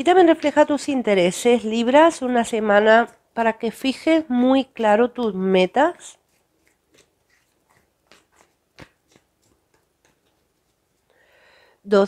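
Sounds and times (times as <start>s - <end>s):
cards clicking and tapping: 6.6s - 10.8s.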